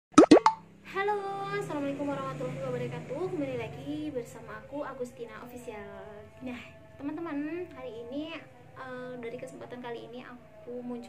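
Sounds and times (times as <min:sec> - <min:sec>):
quick loud plops: 0:00.1 - 0:00.6.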